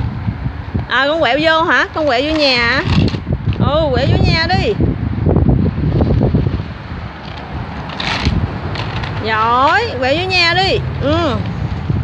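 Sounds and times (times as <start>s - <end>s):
wooden wheels rumbling on concrete: 1.1s - 12.0s
wooden blocks rattling: 7.2s - 9.3s.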